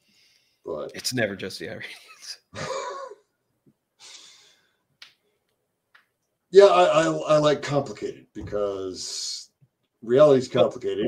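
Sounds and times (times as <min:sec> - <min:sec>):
man laughing: 0:01.9 - 0:03.3.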